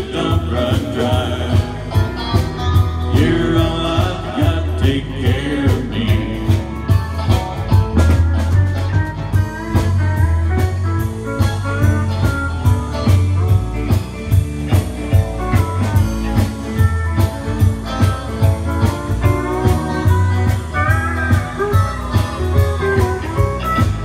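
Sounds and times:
bass guitar: 0.0s - 24.0s
electric guitars: 0.0s - 24.0s
pedal steel guitar: 0.0s - 24.0s
steady drum beat: 0.0s - 24.0s.

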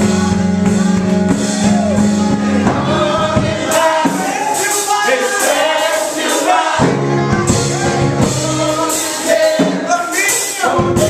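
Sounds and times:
congregation singing gospel: 0.0s - 11.0s
instrumental accompaniment: 0.0s - 11.0s.

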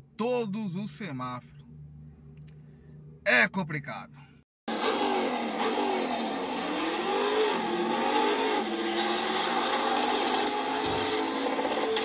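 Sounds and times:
car engine revving: 4.7s - 12.0s.

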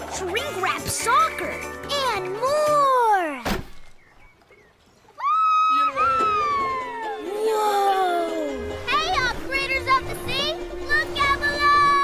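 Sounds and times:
held note background music: 6.0s - 12.0s.

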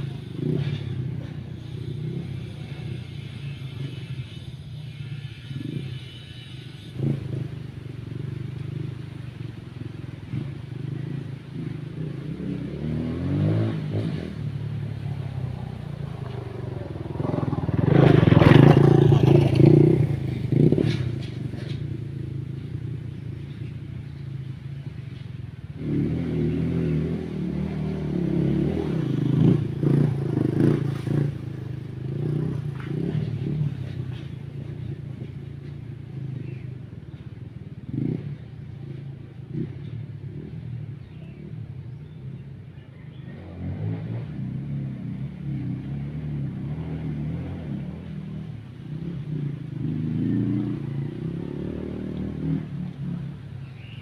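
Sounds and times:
dirt bike engines revving: 0.0s - 54.0s.

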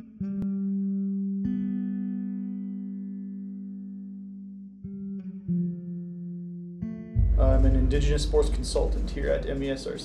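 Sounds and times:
plucked guitar note: 4.8s - 9.8s.

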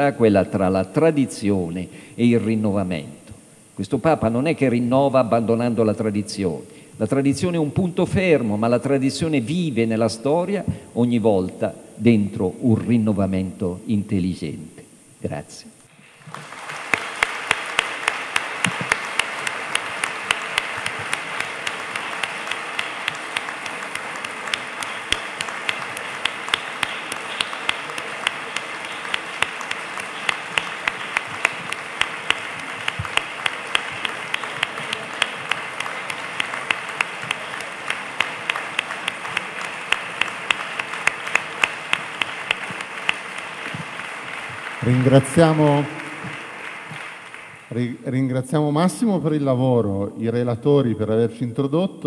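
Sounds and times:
audience applauding: 16.0s - 48.3s
close loud claps: 16.1s - 48.0s.

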